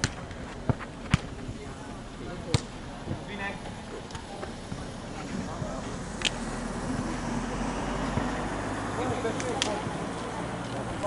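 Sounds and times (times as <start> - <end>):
football thuds: 0.0 - 5.8
faint distant voices: 0.0 - 11.0.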